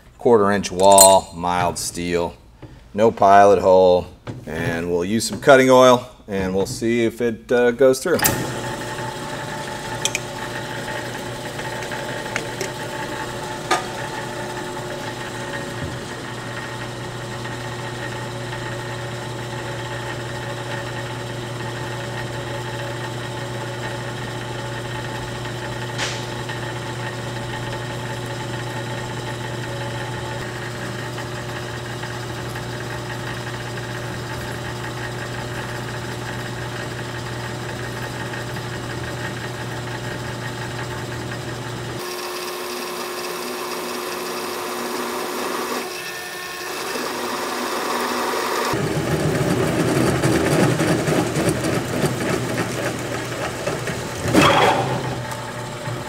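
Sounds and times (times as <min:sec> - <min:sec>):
drill press motor humming: 0:08.2 - 0:56.0
drill bit cutting steel: 0:09.3 - 0:17.3, 0:42.0 - 0:48.8
sharp click: 0:10.0 - 0:10.3.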